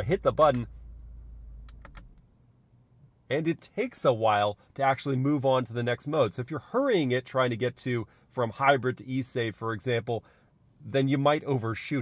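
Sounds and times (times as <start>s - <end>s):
low hum in car cabin: 0.0s - 12.0s.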